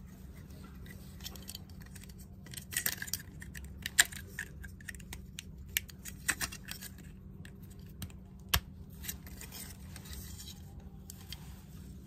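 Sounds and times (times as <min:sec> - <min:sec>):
plastic parts clicking: 0:01.2 - 0:09.8.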